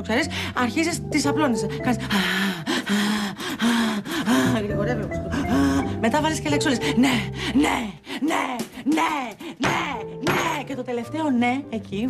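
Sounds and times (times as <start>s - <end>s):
woman panting: 2.0s - 6.0s, 6.8s - 10.2s.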